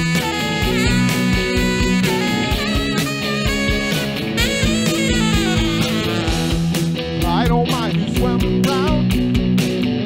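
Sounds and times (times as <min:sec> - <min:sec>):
saxophone: 0:00.0 - 0:07.0
bass guitar: 0:00.0 - 0:10.0
electric guitar: 0:00.0 - 0:10.0
steady beat: 0:00.0 - 0:10.0.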